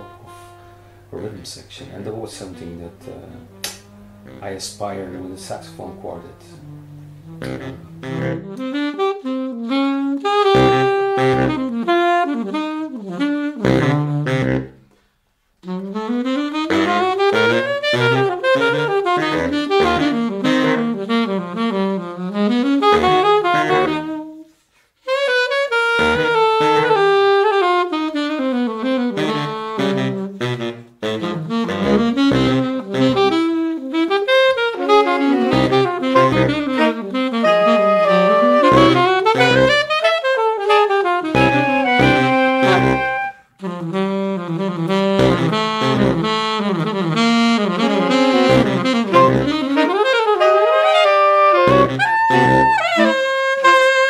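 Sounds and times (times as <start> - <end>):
saxophones playing jazz: 0.0 - 14.9, 15.6 - 54.0.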